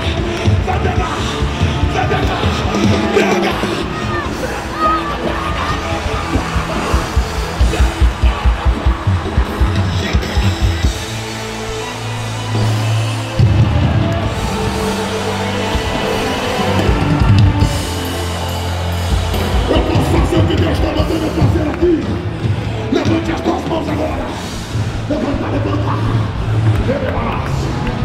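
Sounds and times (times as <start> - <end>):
fast drum beats: 0.0 - 27.5
held bass notes: 0.0 - 28.0
worship band music: 0.0 - 28.0.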